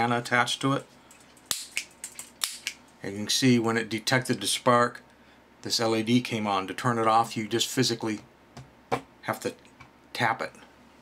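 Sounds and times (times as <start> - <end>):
igniter spark snaps: 1.5 - 2.8.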